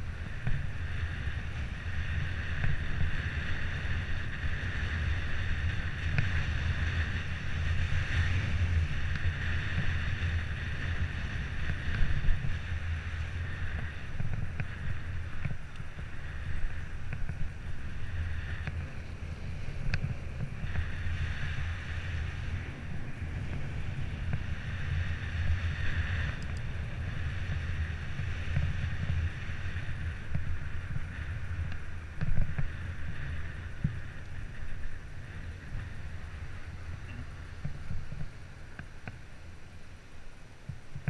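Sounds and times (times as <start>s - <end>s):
wind buffeting microphone: 0.0s - 39.6s
bicycle tyre road noise: 0.0s - 41.0s.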